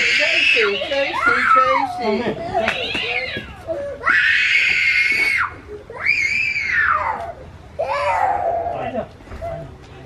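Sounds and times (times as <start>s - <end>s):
child screaming: 0.0s - 2.2s, 2.8s - 8.8s.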